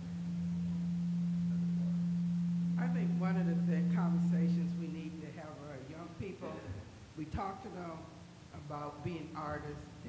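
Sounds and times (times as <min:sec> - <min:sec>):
low feedback tone: 0:00.0 - 0:06.5
person talking: 0:02.8 - 0:10.0.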